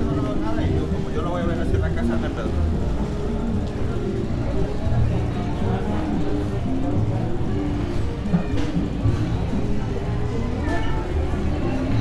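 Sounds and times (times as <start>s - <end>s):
low street rumble: 0.0s - 12.0s
music: 0.0s - 12.0s
people's voices: 0.0s - 12.0s.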